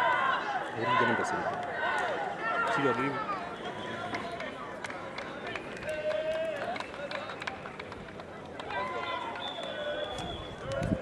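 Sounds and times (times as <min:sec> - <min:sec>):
people shouting: 0:00.0 - 0:04.4.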